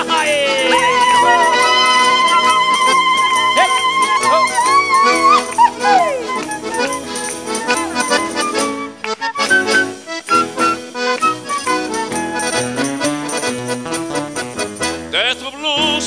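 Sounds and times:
guitars and strings: 0.0s - 16.0s
steady jingling beat: 0.0s - 16.0s
high vibrato note: 0.7s - 7.9s.

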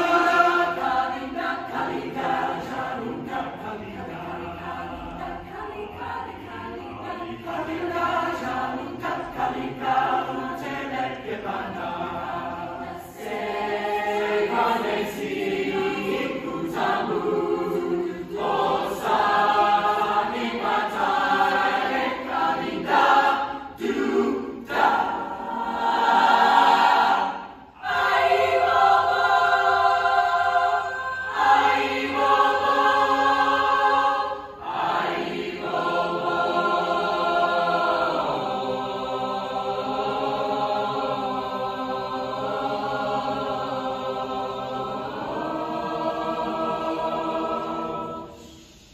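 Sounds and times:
choir singing in harmony: 0.0s - 48.9s.

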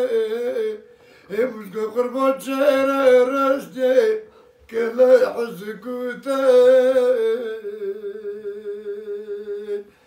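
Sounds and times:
old man singing unaccompanied: 0.0s - 10.0s.

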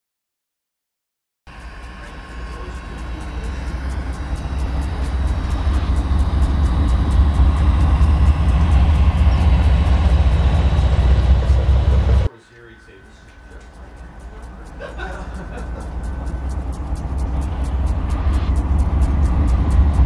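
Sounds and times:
rapid even clicking of wheels: 1.5s - 12.3s, 13.5s - 20.0s
train engine rumble: 1.5s - 20.0s.

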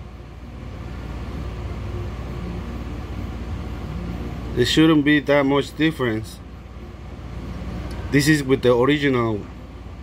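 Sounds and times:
car engine and road noise: 6.5s - 10.0s.

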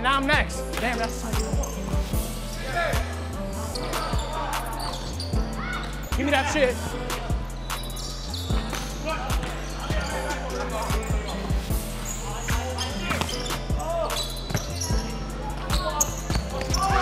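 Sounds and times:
background music with bass line: 0.0s - 17.0s.

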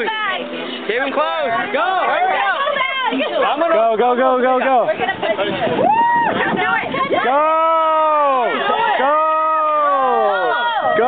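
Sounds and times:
people shouting: 5.8s - 11.0s.

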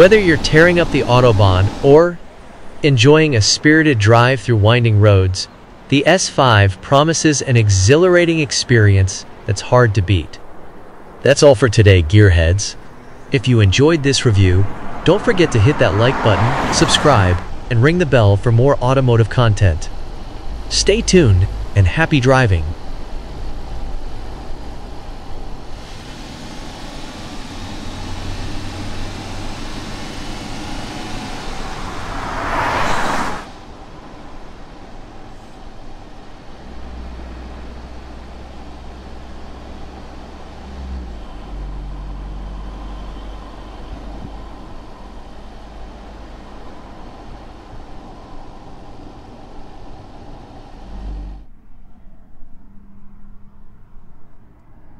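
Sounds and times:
low engine drone: 0.0s - 54.9s
car passing by: 10.4s - 20.7s, 22.7s - 51.5s.

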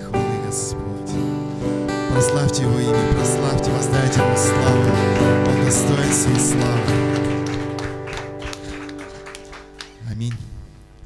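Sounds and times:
band chord ringing out: 0.0s - 10.0s
hand claps: 4.0s - 10.4s.

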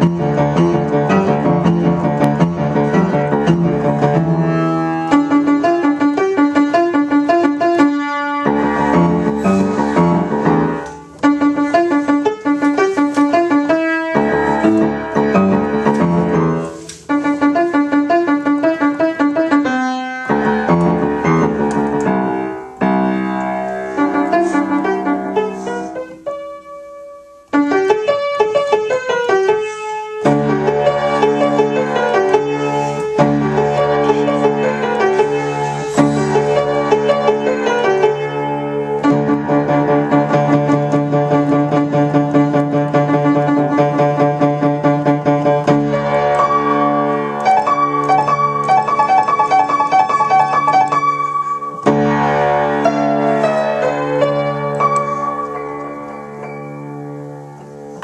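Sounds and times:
piano played four hands: 0.0s - 58.0s.

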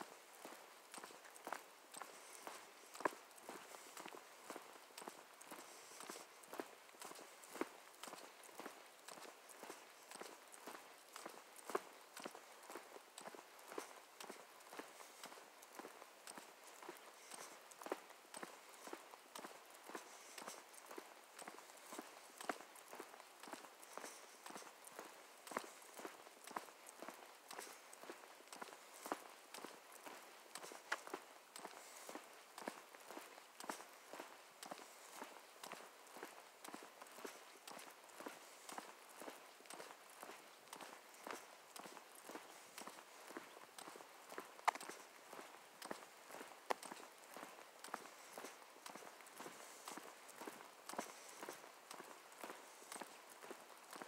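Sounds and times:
footsteps on asphalt: 0.0s - 54.0s.

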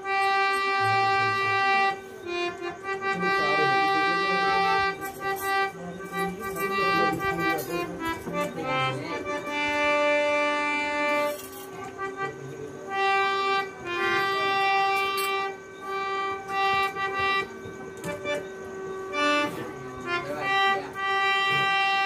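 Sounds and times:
harmonium playing sustained chords: 0.0s - 22.0s
steady drone note: 13.2s - 22.0s.

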